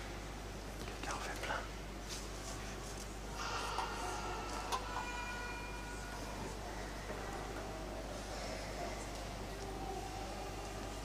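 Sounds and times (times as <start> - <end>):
low electrical hum: 0.0 - 11.0
faint whispered voice: 0.8 - 11.0.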